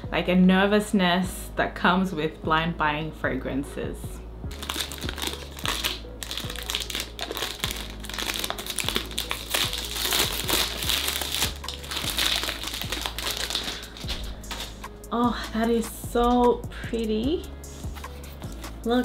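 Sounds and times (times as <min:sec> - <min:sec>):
cellophane crinkling and tearing: 0:04.5 - 0:14.8.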